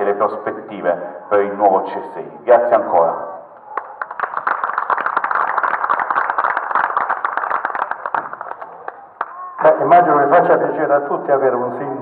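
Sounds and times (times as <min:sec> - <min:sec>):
audience applauding: 0:03.6 - 0:09.7.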